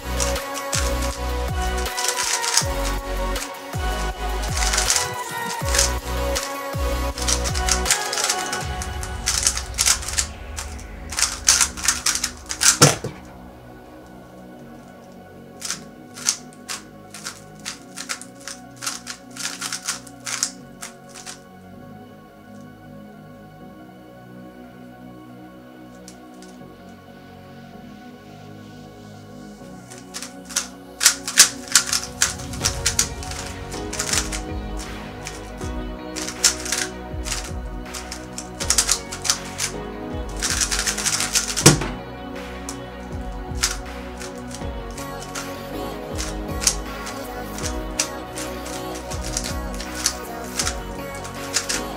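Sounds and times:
background music: 0.0s - 51.9s
puzzle cube plastic clacks: 1.9s - 3.5s, 4.6s - 13.3s, 15.6s - 21.4s, 29.9s - 35.5s, 36.2s - 42.0s, 46.2s - 51.9s.

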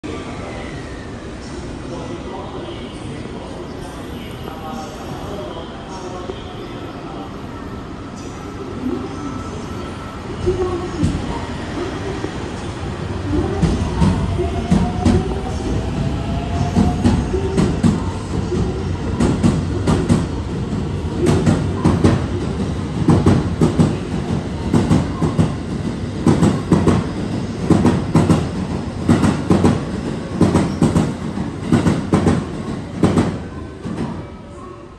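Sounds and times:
train rumble: 10.1s - 34.2s.

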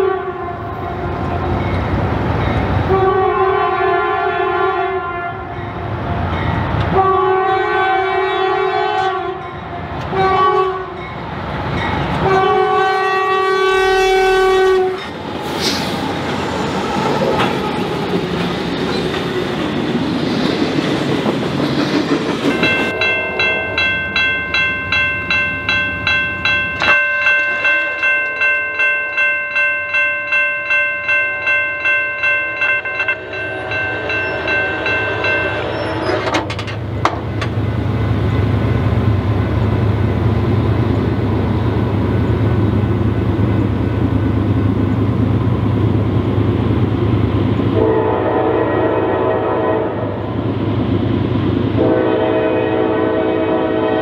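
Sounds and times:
locomotive horn blasts: 0.0s - 1.6s, 2.8s - 5.6s, 6.9s - 9.4s, 10.1s - 11.0s, 12.2s - 15.1s, 47.8s - 50.1s, 51.8s - 54.0s
train rumble and wheel clatter: 0.0s - 54.0s
bell ringing: 22.5s - 36.3s.

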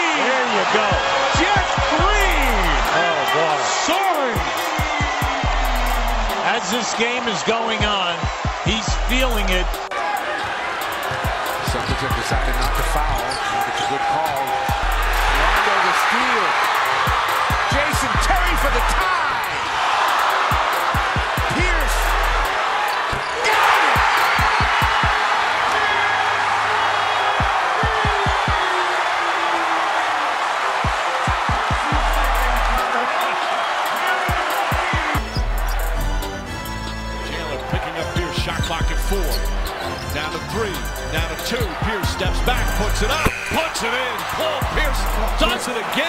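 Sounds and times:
crowd cheering: 0.0s - 46.0s
sneaker squeaks: 13.2s - 14.1s, 38.5s - 40.2s.

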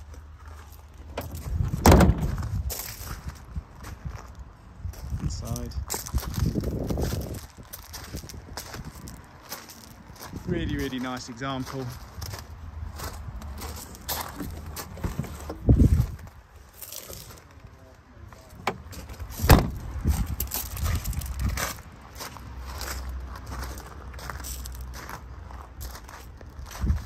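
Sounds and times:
footsteps crunching on gravel: 0.0s - 17.6s, 18.4s - 27.0s
loud thumps: 1.2s - 2.6s, 18.7s - 19.9s.

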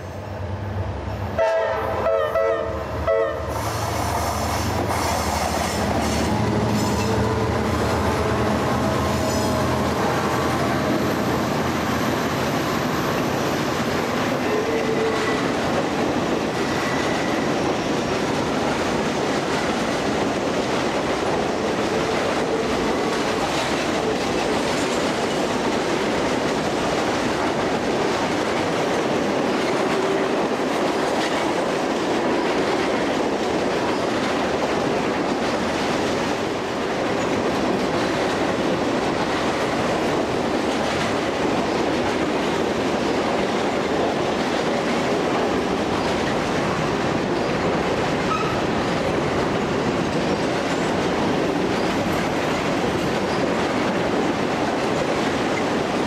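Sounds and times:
freight train cars rolling past: 0.0s - 56.0s.

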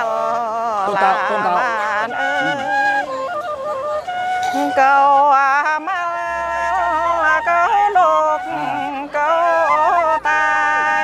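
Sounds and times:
person singing folk song: 0.0s - 3.4s, 4.1s - 11.0s
transverse flute: 0.0s - 11.0s.

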